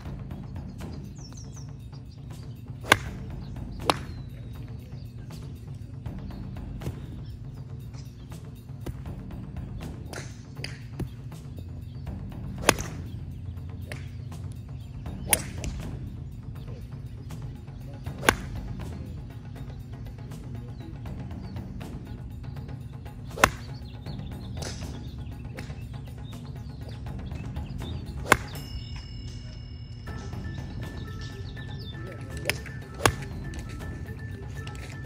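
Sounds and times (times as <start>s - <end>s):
background music: 0.0s - 35.0s
golf club striking ball: 2.3s - 5.8s, 6.8s - 16.4s, 18.0s - 19.7s, 23.2s - 25.8s, 26.7s - 35.0s.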